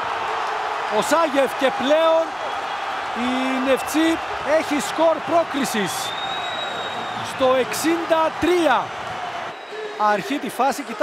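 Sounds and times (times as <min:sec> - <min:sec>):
stadium crowd noise: 0:00.0 - 0:11.0
man commentating: 0:00.9 - 0:02.3, 0:03.1 - 0:06.2, 0:07.1 - 0:08.9, 0:09.7 - 0:11.0.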